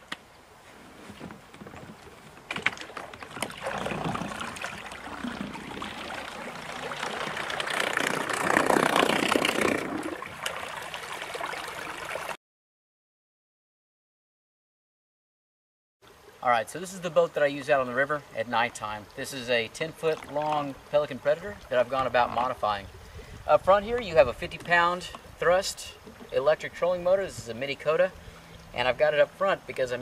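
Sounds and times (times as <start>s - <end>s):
water rushing around boat hull: 0.0s - 12.4s, 16.1s - 30.0s.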